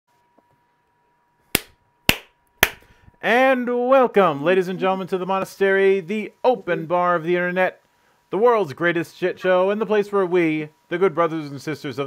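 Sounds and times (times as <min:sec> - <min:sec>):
faint steady whine: 0:00.1 - 0:12.0
sharp crack: 0:01.6 - 0:03.0.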